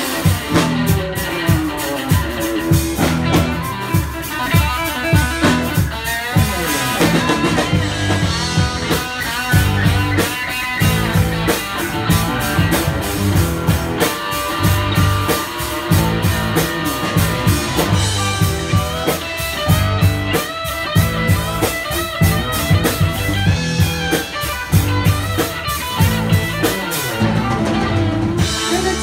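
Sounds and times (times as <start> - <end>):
live rock band playing: 0.0 - 29.0
steady drum beat: 0.0 - 29.0.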